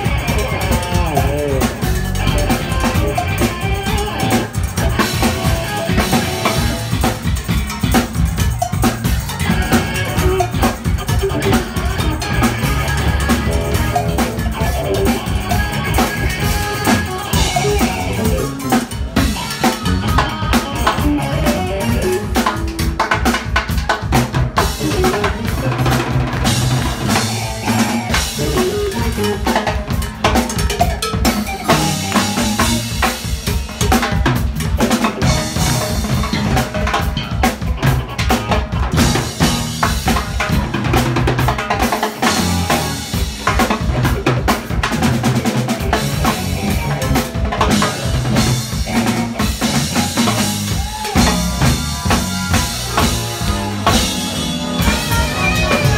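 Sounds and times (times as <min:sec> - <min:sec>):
bass line: 0:00.0 - 0:55.9
congas: 0:00.0 - 0:55.9
latin rock band playing: 0:00.0 - 0:55.9.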